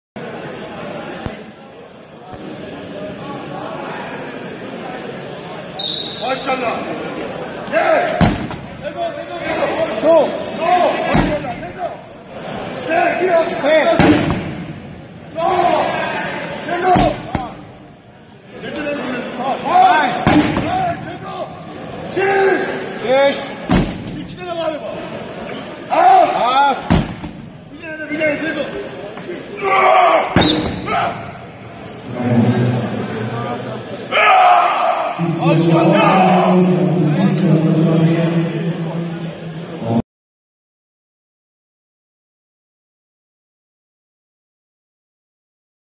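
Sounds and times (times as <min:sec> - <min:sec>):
indistinct chatter of people: 0:00.2 - 0:40.0
sharp thump: 0:14.0 - 0:14.6, 0:20.2 - 0:20.8.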